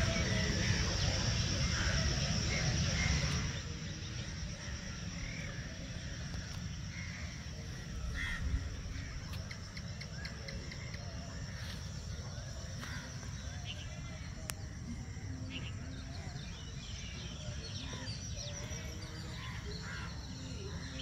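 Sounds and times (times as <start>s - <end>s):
insects droning: 0.0s - 21.0s.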